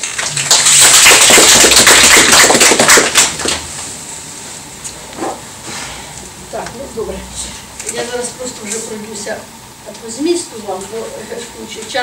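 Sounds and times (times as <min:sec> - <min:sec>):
audience applauding: 0:00.0 - 0:03.7.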